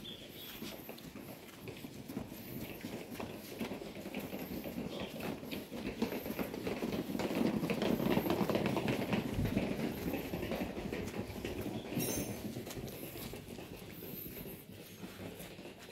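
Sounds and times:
suitcase wheels rattling on paving: 0.0 - 15.9.

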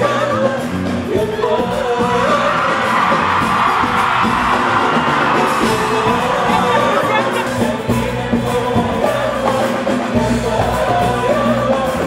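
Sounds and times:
band playing pop music: 0.0 - 12.0
crowd singing and cheering: 0.0 - 12.0
woman singing: 5.8 - 9.4.

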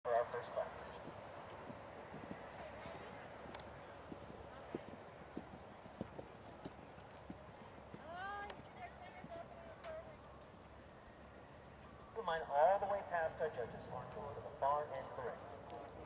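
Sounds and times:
hooves thudding on sand: 0.5 - 12.1.

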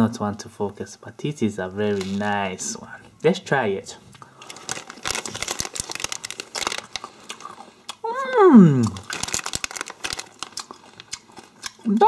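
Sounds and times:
plastic packet crinkling: 1.8 - 2.5, 4.2 - 8.0, 8.8 - 12.0.

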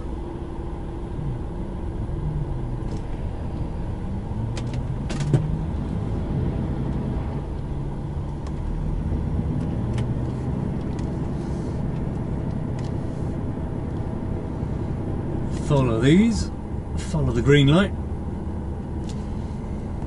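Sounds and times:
truck diesel engine running: 0.0 - 20.0.

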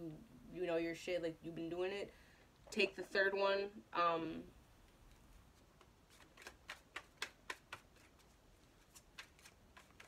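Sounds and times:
cards being shuffled: 5.4 - 10.0.

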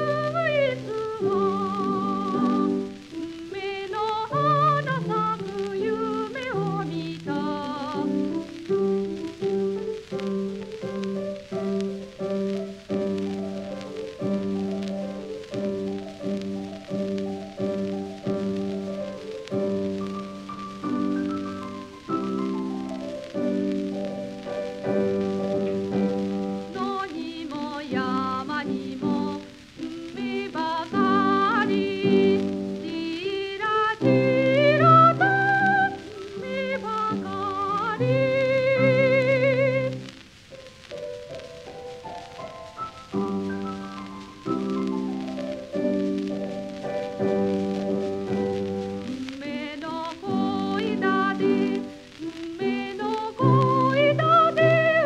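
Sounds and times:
woman singing with vibrato: 0.0 - 8.6, 26.6 - 40.2, 48.3 - 55.0
piano accompaniment: 0.0 - 55.0.

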